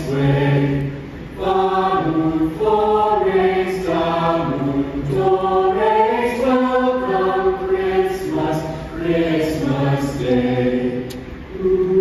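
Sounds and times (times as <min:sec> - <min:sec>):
chorus singing christmas song: 0:00.0 - 0:12.0.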